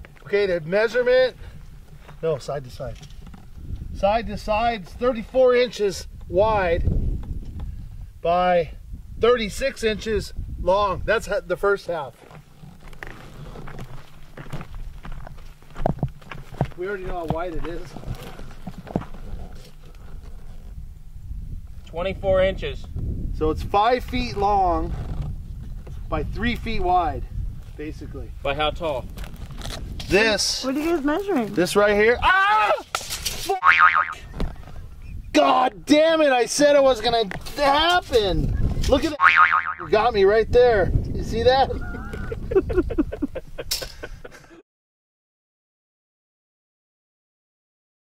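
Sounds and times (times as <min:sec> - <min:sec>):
footsteps on stony dirt: 0:12.0 - 0:20.6
springy boing of tape measure blade: 0:33.6 - 0:34.2, 0:39.2 - 0:39.9.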